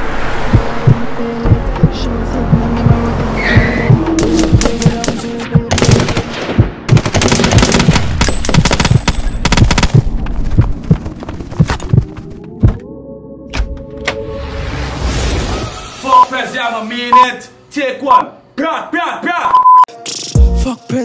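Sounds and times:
music beat: 0:00.4 - 0:07.1, 0:19.9 - 0:21.0
automatic rifle gunfire: 0:05.1 - 0:10.0.

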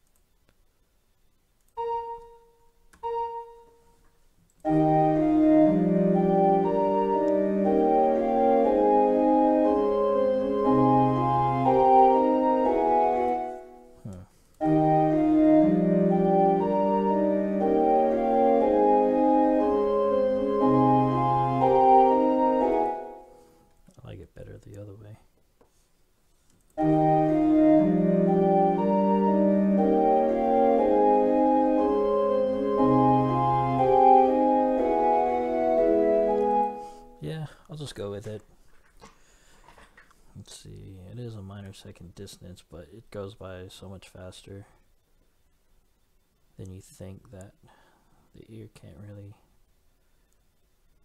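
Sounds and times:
synthesized pipe organ fugue: 0:01.8 - 0:03.9, 0:04.6 - 0:23.6, 0:26.8 - 0:37.2.

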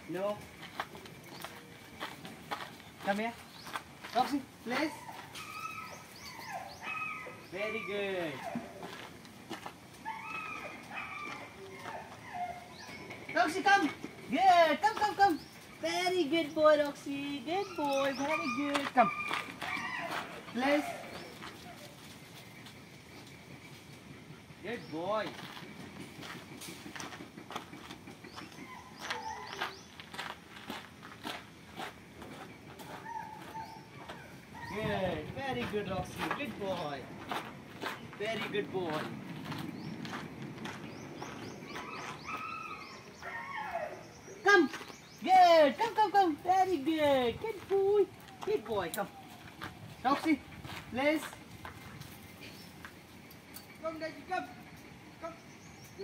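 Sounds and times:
footsteps on dirt floor: 0:00.1 - 0:06.4, 0:07.4 - 0:24.1, 0:24.8 - 0:43.4, 0:44.6 - 0:53.2
bird chirps: 0:00.6 - 0:08.0, 0:39.4 - 0:45.3, 0:52.2 - 0:56.0
dog whining: 0:04.9 - 0:08.8, 0:10.0 - 0:13.1, 0:17.6 - 0:21.9, 0:28.6 - 0:29.7, 0:33.0 - 0:34.8, 0:41.7 - 0:44.2.

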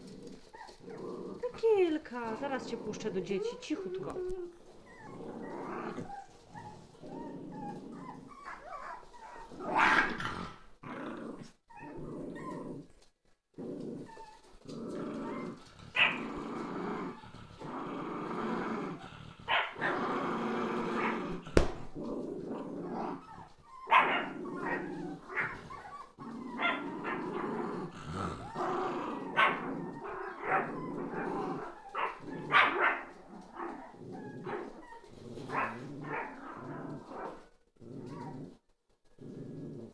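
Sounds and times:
puppies growling and yipping: 0:00.0 - 0:39.9.

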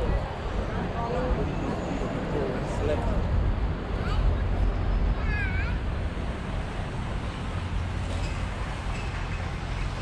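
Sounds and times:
traffic rumble: 0:00.0 - 0:10.0
wind: 0:00.0 - 0:10.0.

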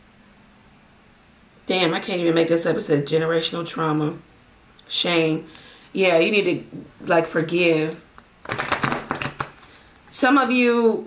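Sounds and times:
cards being shuffled: 0:08.4 - 0:09.8.

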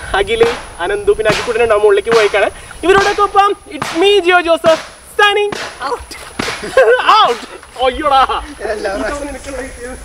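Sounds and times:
sharp smacking hits: 0:00.4 - 0:07.8.

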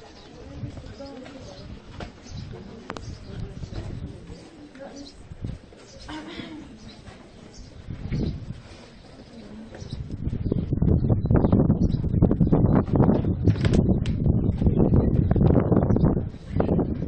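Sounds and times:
low rumbling buffeting on microphone: 0:00.3 - 0:04.5, 0:05.2 - 0:05.8, 0:07.4 - 0:17.0.

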